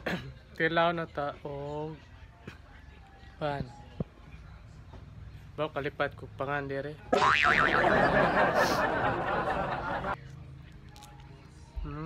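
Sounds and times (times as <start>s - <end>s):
cartoon boing sound effect: 7.2s - 7.9s.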